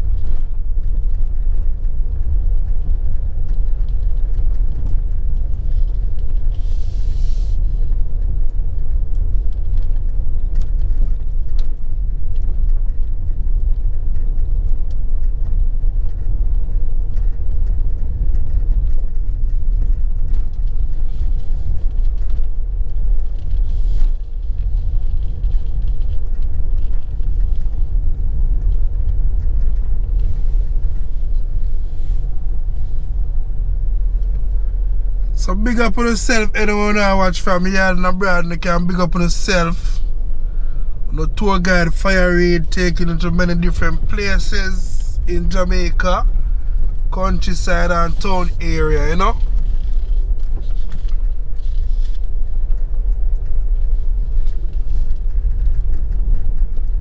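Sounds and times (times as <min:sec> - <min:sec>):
vehicle driving on road: 0:00.0 - 0:57.0.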